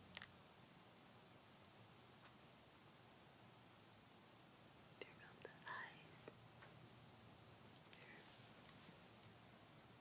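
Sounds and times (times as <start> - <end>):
soft whisper: 5.0 - 6.4, 7.7 - 9.4
faint clicks: 7.7 - 9.4.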